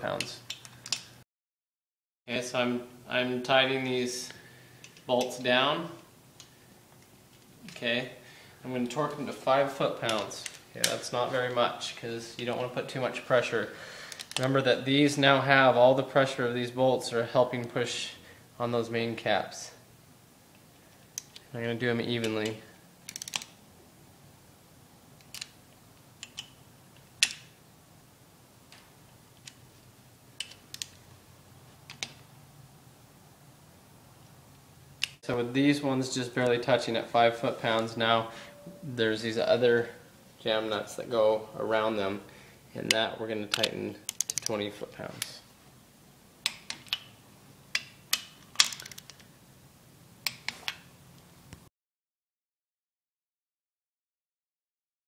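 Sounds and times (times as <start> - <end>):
hand ratchet clicking: 23.1 - 23.5, 42.9 - 44.5
sharp metal clicks of wrench: 23.1 - 23.5, 42.9 - 44.6.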